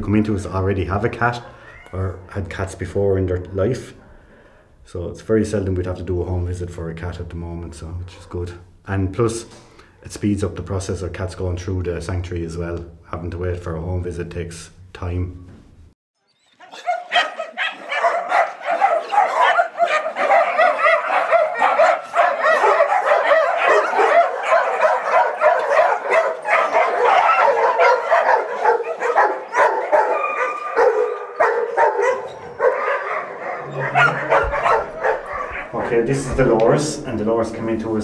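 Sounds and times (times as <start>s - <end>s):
many dogs barking and yipping: 16.3s - 36.8s.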